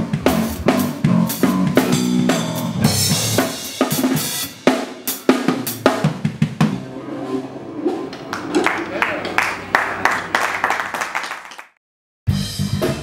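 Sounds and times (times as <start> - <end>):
drum kit solo: 0.0 - 8.1, 12.3 - 13.0.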